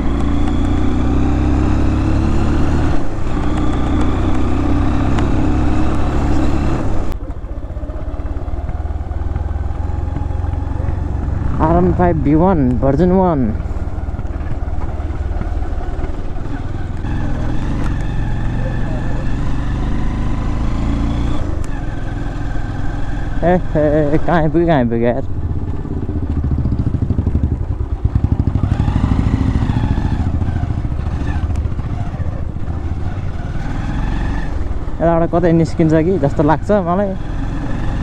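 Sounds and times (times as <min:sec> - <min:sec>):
motorcycle engine running: 0:00.0 - 0:38.0
person speaking: 0:10.9 - 0:13.7.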